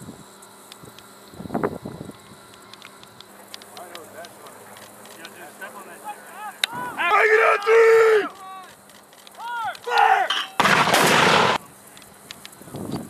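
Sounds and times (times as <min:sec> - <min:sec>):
person shouting: 0:06.0 - 0:08.7, 0:09.4 - 0:10.6
light clicks: 0:11.9 - 0:13.0.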